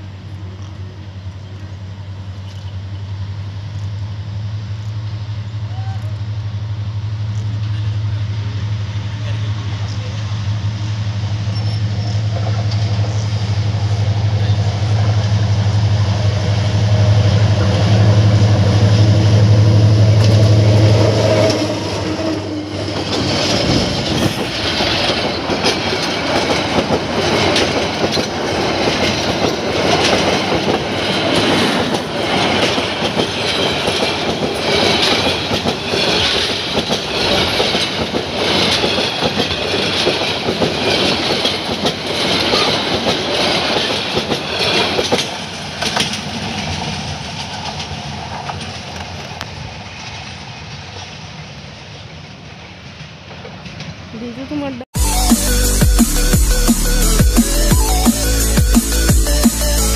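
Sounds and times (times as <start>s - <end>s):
locomotive engine drone: 0.0s - 52.2s, 54.4s - 59.9s
train wheels clacking on rails: 7.3s - 54.8s
high-pitched wheel noise: 9.8s - 45.1s, 55.0s - 59.9s.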